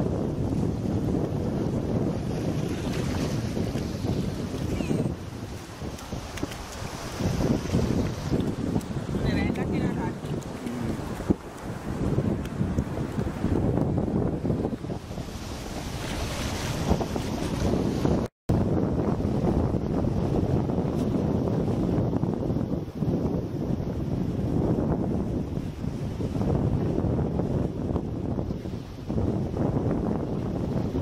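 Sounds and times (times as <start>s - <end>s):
small surf: 0.0s - 31.0s
wind buffeting microphone: 0.0s - 31.0s
wave washing up beach: 0.3s - 18.3s.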